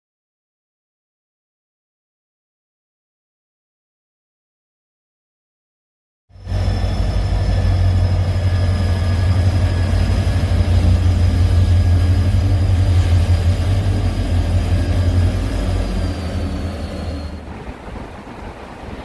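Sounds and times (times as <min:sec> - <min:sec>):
faint high whine: 0:06.3 - 0:18.2
diesel locomotive engine rumbling: 0:06.3 - 0:19.0.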